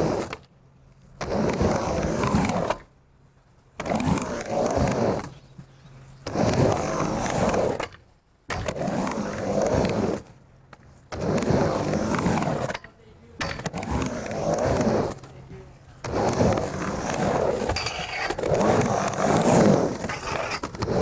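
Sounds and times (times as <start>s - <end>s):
skateboard wheels rolling on ramp: 0.0s - 21.0s.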